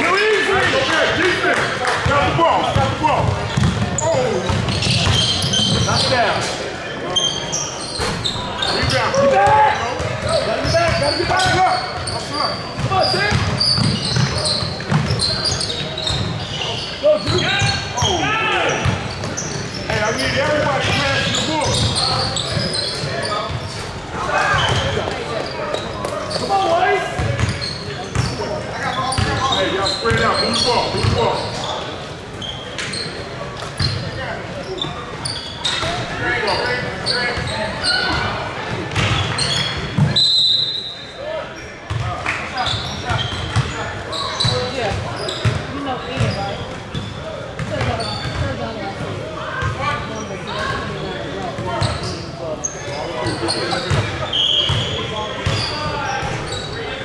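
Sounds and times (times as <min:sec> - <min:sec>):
voices echoing in hall: 0:00.0 - 0:57.0.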